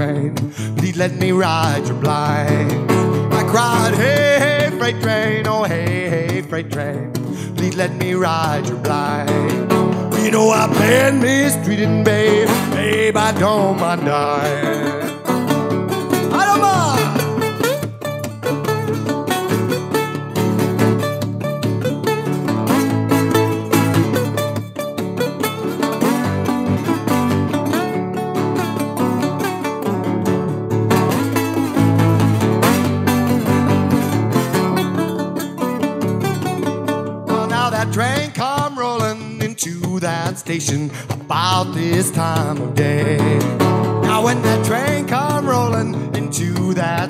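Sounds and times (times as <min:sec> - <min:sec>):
person singing: 0:00.0 - 0:22.6, 0:37.1 - 0:47.0
blues guitar playing: 0:00.0 - 0:47.0.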